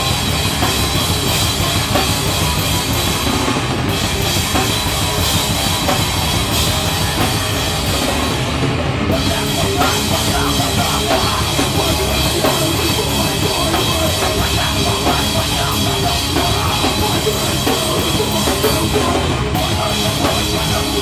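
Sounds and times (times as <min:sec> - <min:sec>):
bass guitar: 0:00.0 - 0:21.0
distorted electric guitar: 0:00.0 - 0:21.0
drum kit with cymbals: 0:00.0 - 0:21.0.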